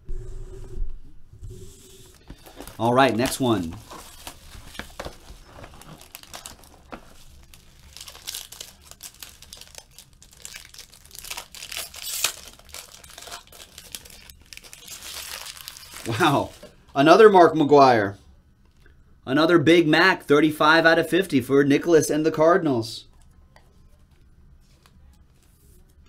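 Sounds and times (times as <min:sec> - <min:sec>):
plastic shrink wrap crinkling: 0:02.1 - 0:16.7.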